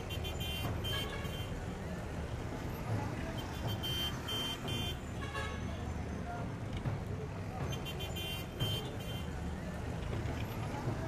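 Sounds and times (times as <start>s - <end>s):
vehicle engines running: 0.0s - 11.0s.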